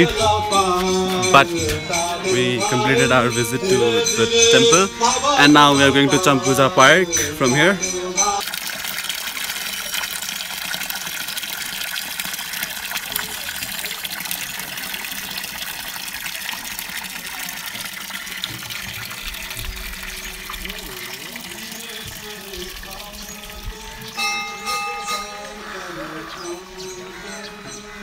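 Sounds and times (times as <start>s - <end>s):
water pouring from stone spout: 0.0s - 26.7s
water splashing: 0.0s - 27.3s.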